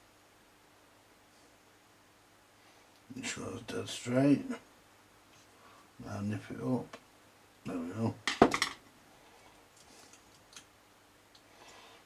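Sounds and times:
screwdriver put down on workbench: 8.3 - 8.8.

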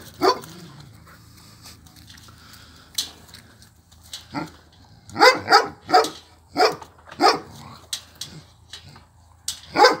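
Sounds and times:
dog barking: 0.2 - 0.5, 5.2 - 7.5, 9.7 - 10.0.

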